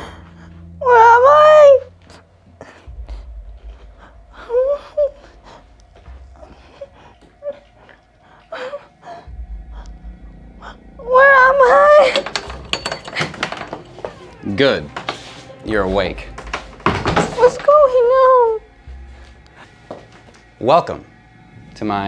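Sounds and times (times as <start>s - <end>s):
woman whimpering and gasping: 0.0s - 10.0s
woman crying out: 11.0s - 13.1s.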